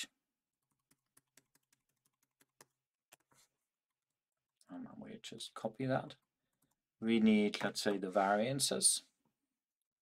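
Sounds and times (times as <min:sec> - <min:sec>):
computer keyboard keystrokes: 0:00.7 - 0:03.3.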